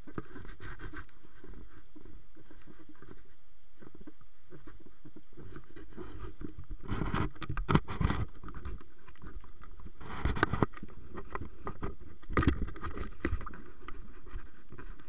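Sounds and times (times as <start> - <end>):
low background noise: 0.0 - 15.0.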